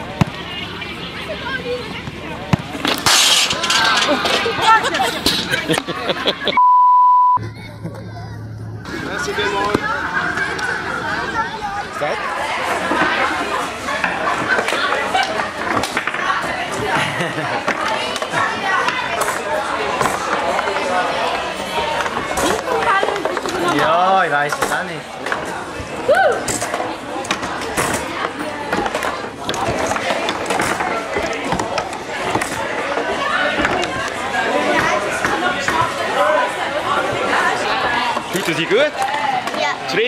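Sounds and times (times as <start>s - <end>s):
voices: 0.0s - 6.6s, 7.4s - 40.0s
people talking and calling out: 0.0s - 40.0s
high-pitched beep: 6.6s - 7.4s.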